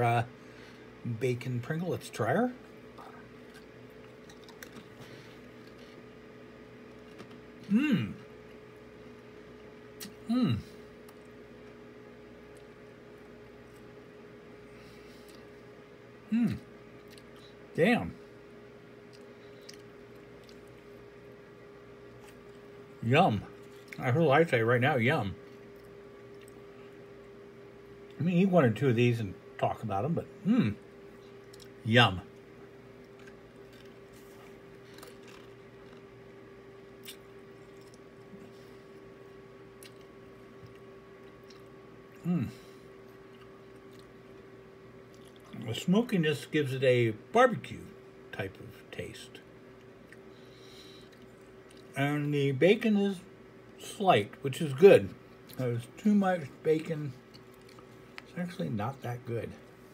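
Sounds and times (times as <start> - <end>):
steady low hum: 0.0 - 59.9
chewing chip: 3.0 - 6.1, 19.1 - 21.0, 32.4 - 36.1, 37.0 - 38.5, 39.8 - 42.3, 43.2 - 44.4, 45.0 - 45.6, 57.2 - 58.3.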